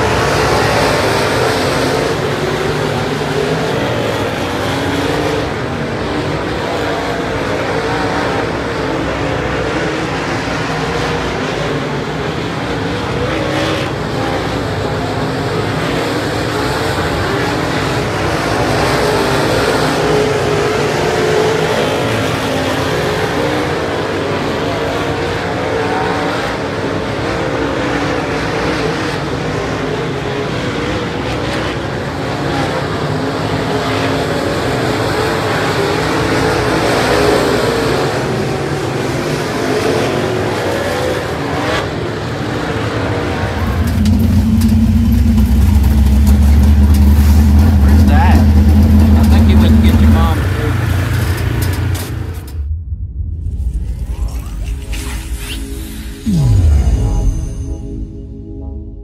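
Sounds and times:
race car engines: 0.0 - 58.3
deep steady hum: 43.5 - 59.0
voices: 47.6 - 52.5.

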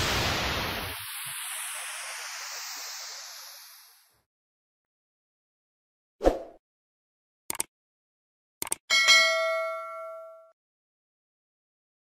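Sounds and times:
cursor click: 7.5 - 7.7, 8.6 - 8.8
notification bell ding: 8.9 - 10.6.

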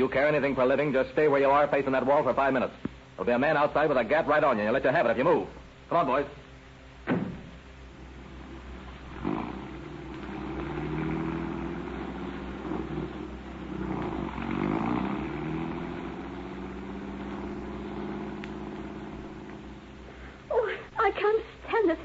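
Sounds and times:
car engine starting and revving: 7.9 - 20.2.

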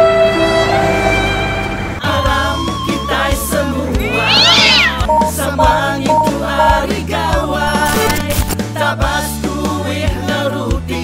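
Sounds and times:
cat meowing: 4.0 - 5.9
music with steady beat: 5.0 - 8.0.

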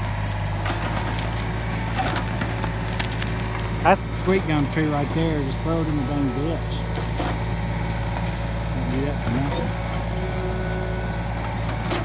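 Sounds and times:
wood cracking and snapping: 0.0 - 3.8
excavator diesel engine running: 0.0 - 12.0.

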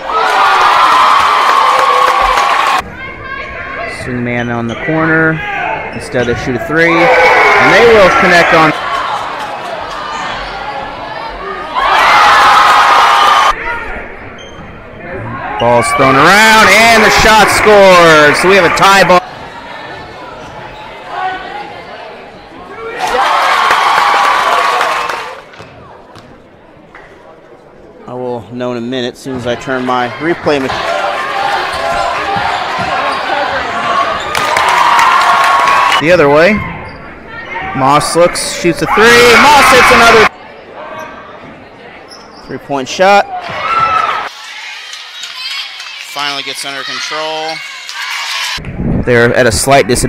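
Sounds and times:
crowd cheering loudly: 0.0 - 3.9, 6.7 - 13.9, 15.0 - 20.0, 20.8 - 25.5, 29.7 - 40.3, 43.3 - 48.6.

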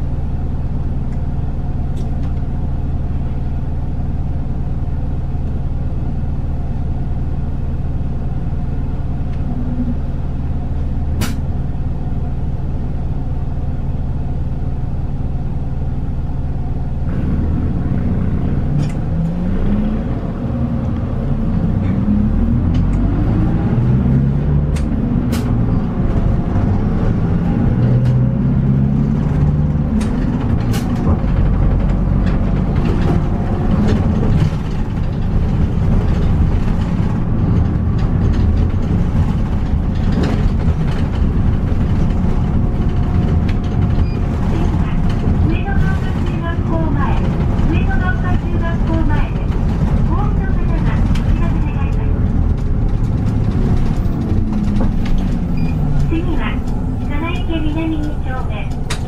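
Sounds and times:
bus engine idling and accelerating: 0.0 - 59.0.

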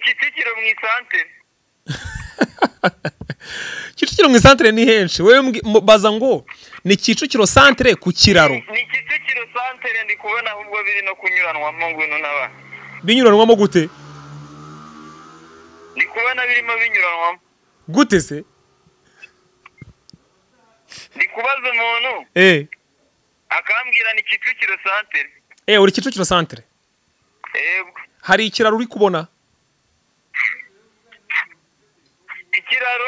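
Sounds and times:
voice through phone speaker: 8.2 - 13.0, 30.4 - 31.6, 32.2 - 33.0.

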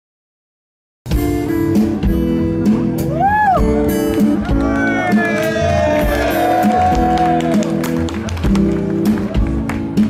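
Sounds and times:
acoustic guitar: 1.1 - 10.0
live pop band playing: 1.1 - 10.0.

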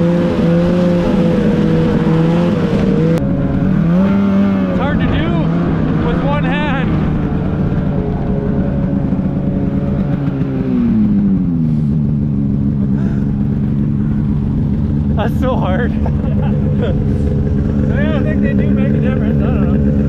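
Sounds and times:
snowmobile engine running: 0.0 - 20.0.

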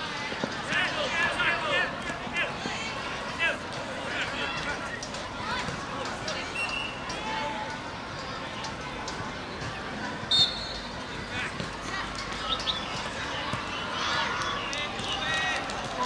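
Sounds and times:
crowd and field noise: 0.0 - 16.0.

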